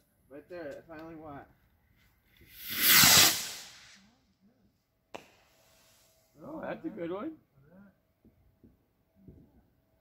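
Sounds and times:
firework rocket hissing whoosh: 2.5s - 4.0s, 5.4s - 6.2s.

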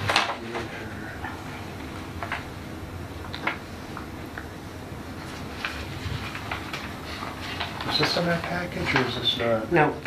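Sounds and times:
low room rumble: 0.0s - 10.0s
paper rustling: 5.2s - 9.6s.

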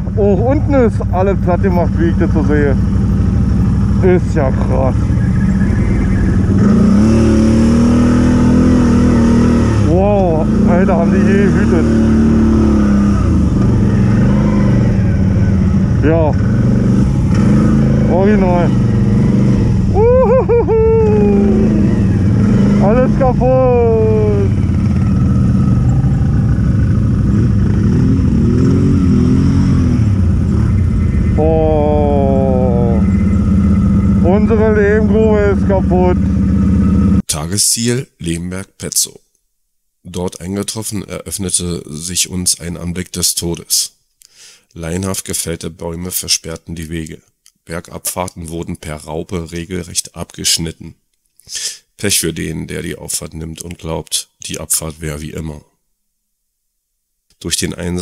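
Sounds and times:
quad bike engine revving: 0.0s - 37.3s.

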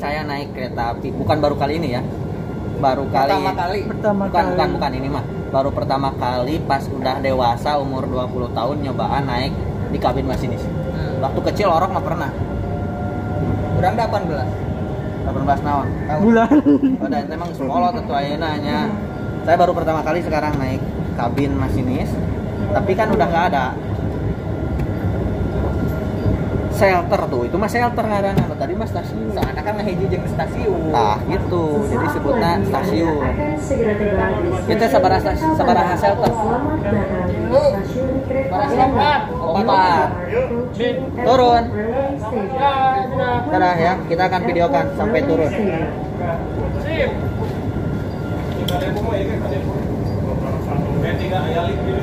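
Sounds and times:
faint high whine: 0.0s - 40.4s
muffled voices: 0.0s - 52.0s
train car rumbling: 0.0s - 52.0s.

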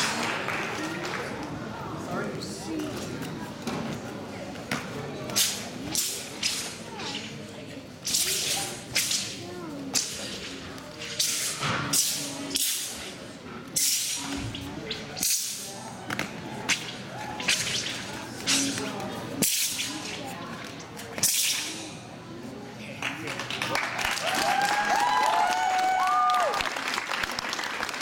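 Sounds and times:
murmur of voices: 0.0s - 28.0s
sword swishing through air: 8.0s - 13.1s.

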